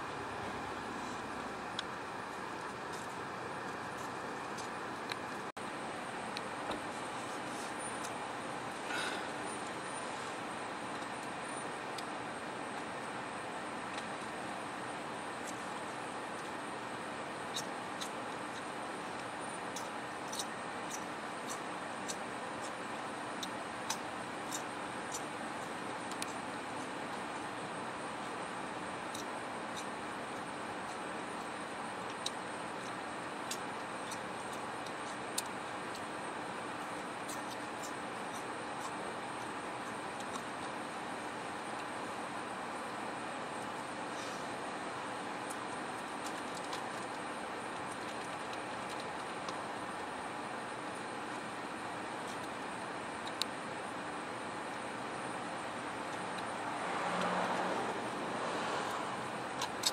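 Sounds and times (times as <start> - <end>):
engines idling and traffic: 0.0 - 59.9
faint hum: 0.0 - 59.9
small sharp clicks: 59.6 - 59.9.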